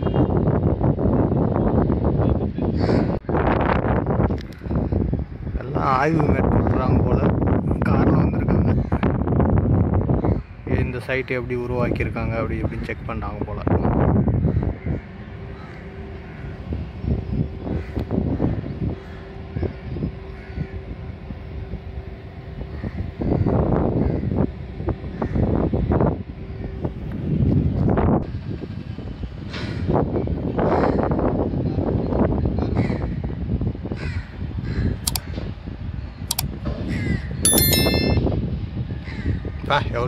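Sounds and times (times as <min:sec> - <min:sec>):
wind gusting on microphone: 0:00.0 - 0:40.0.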